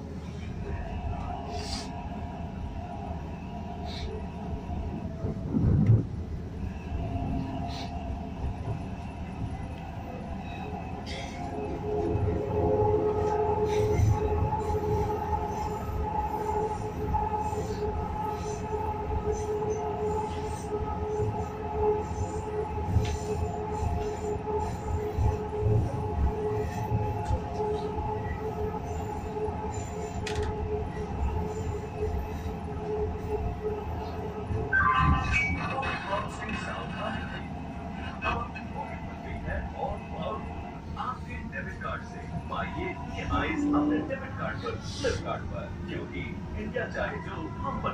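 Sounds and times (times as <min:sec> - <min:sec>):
train wheels rumbling on rails: 0:00.0 - 0:47.9
train motor whine: 0:08.5 - 0:35.0.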